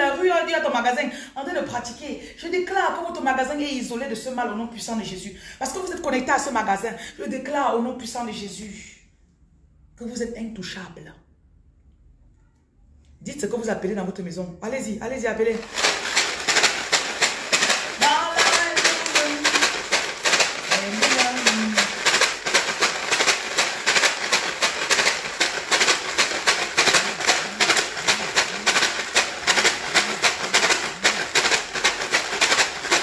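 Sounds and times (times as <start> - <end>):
water shaken in plastic bottle: 15.4 - 33.0.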